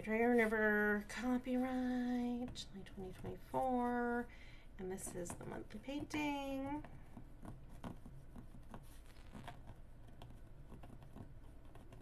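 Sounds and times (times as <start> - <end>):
pen scratching on canvas: 5.9 - 12.0.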